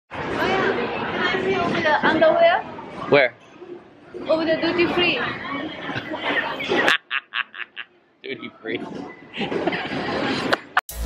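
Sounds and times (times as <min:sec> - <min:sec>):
background chatter: 0:00.1 - 0:10.8.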